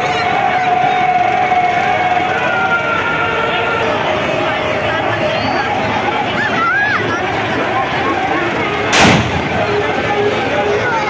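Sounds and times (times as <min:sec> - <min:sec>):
street crowd din: 0:00.0 - 0:11.0
loud bang with ringing tail: 0:09.0 - 0:09.7.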